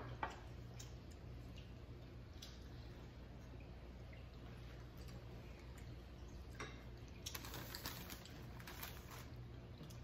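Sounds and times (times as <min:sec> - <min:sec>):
light clicks and crackles: 0:05.0 - 0:10.0.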